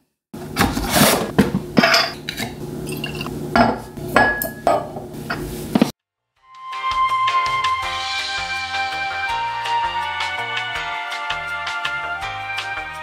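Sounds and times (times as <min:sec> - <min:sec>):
glass ringing: 0:02.9 - 0:04.9.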